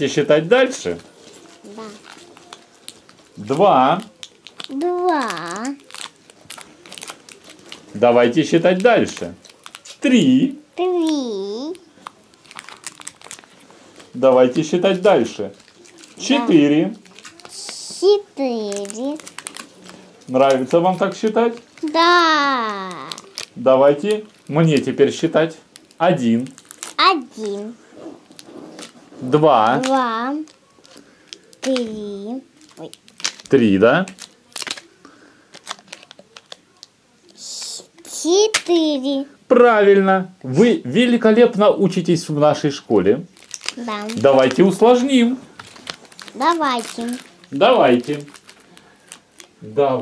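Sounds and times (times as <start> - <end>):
plastic packet crinkling: 0.8 - 36.9, 43.2 - 49.6.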